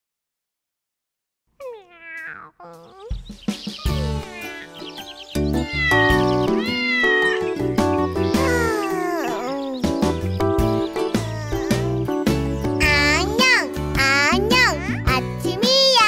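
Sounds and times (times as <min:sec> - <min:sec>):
cartoon cat meowing: 0:01.6 - 0:03.2, 0:03.8 - 0:04.8, 0:05.6 - 0:07.6, 0:08.3 - 0:09.9, 0:10.9 - 0:12.0
gentle children's song music: 0:01.6 - 0:16.0.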